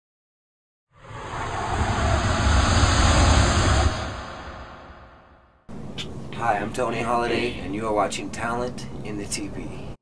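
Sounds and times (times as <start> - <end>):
bass-heavy whoosh: 1.0 - 5.7.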